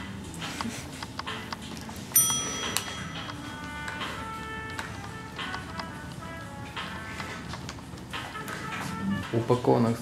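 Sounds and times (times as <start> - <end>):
bright bell chime: 2.2 - 3.4.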